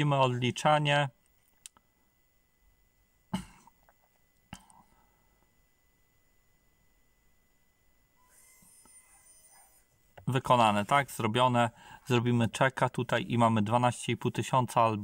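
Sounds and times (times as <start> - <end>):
faint high whine: 0.0 - 15.0
short cough-like burst: 3.3 - 3.7.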